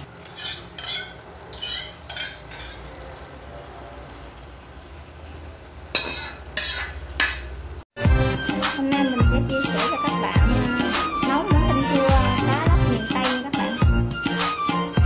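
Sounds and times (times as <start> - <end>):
metal ladle clinking on pot: 0.3 - 2.8.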